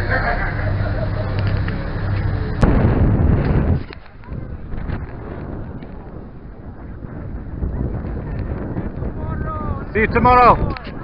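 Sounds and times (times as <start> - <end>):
passengers chatting: 0.0 - 2.6, 3.3 - 11.0
boat engine droning: 0.0 - 7.8
loud rush of noise: 0.0 - 11.0.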